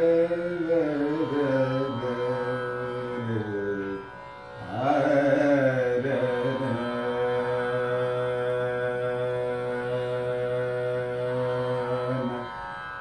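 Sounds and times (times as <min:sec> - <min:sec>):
man singing: 0:00.0 - 0:12.8.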